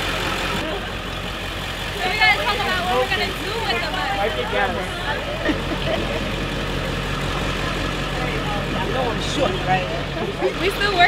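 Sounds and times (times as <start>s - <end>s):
bus engine idling: 0.0s - 11.0s
people laughing and exclaiming: 1.9s - 11.0s.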